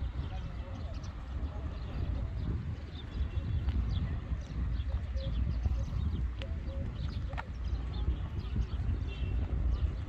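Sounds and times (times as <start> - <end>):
footsteps on brick paving: 0.0 - 10.0
wind rumble on microphone: 0.0 - 10.0.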